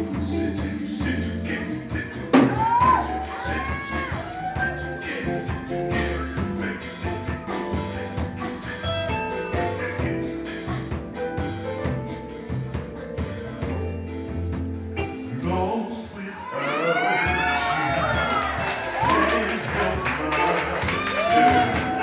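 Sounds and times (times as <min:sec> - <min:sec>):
live band playing slow r and b: 0:00.0 - 0:16.2, 0:16.9 - 0:22.0.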